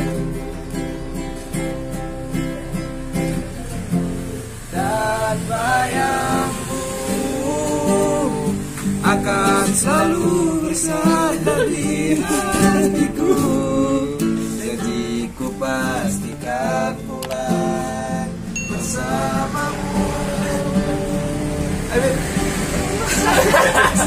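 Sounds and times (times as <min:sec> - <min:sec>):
classical guitar strummed and picked: 0:00.0 - 0:24.0
man singing: 0:04.6 - 0:23.9.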